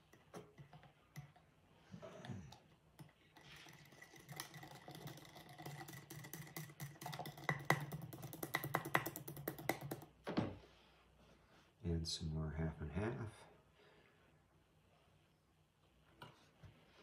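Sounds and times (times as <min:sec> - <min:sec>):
whisk clicking against glass jar: 0:03.0 - 0:10.1.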